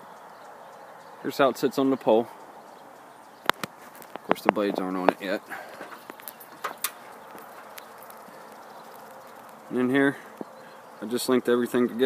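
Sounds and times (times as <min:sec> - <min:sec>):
faint outdoor background noise: 0:00.0 - 0:12.0
sharp clicks: 0:05.9 - 0:09.7.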